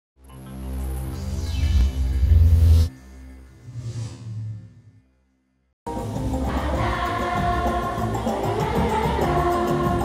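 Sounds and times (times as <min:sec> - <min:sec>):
children's choir singing: 0:06.4 - 0:10.0.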